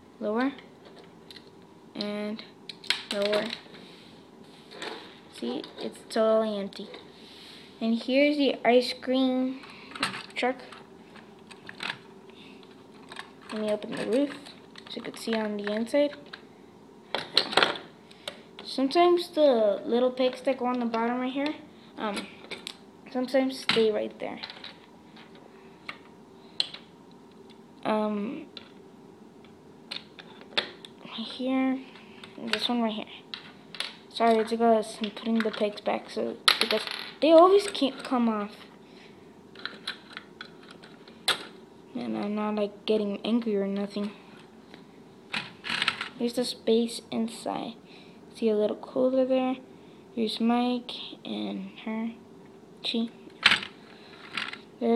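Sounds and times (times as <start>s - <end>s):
plastic pieces clicking and clattering: 13.0s - 16.4s.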